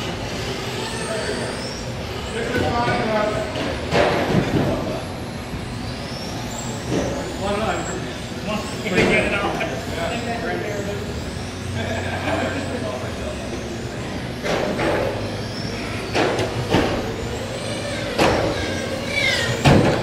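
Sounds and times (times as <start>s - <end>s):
electric rc car motors whining: 0.0s - 20.0s
voices in a hall: 0.0s - 20.0s.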